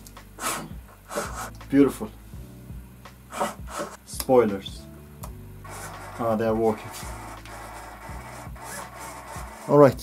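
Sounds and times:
servos buzzing: 3.3 - 4.0, 5.6 - 10.0.

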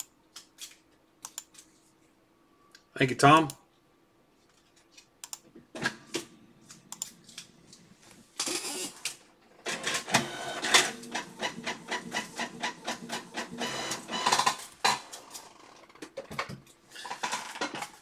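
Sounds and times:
scattered clicks: 0.0 - 1.7, 5.2 - 5.5, 6.7 - 7.5.

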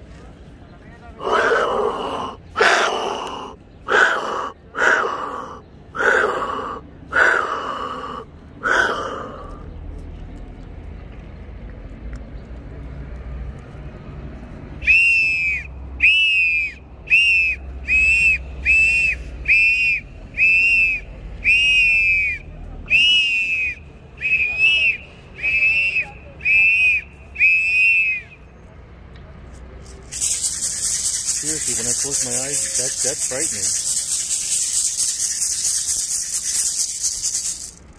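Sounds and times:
short high whistle blasts: 14.8 - 28.4
branches shaken and brushed: 29.8 - 37.9.

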